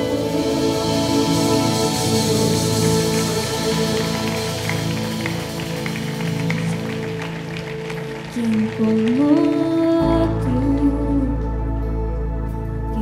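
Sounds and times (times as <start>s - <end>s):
person singing: 0.0s - 7.4s, 8.3s - 11.9s
worship band playing: 0.0s - 10.0s.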